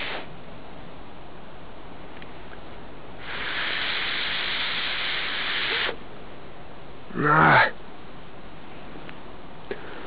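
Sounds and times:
breath blown into tinder: 3.2s - 6.0s.

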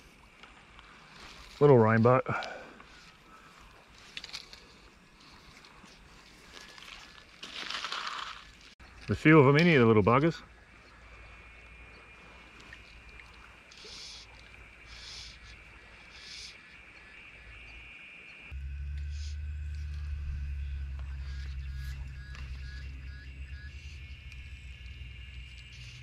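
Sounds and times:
faint high-pitched drone: 8.8s - 26.0s
low rumble: 18.5s - 26.0s.

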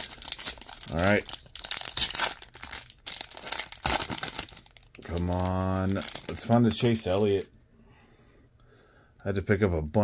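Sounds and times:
foil wrapper crinkling and tearing: 0.0s - 7.5s.

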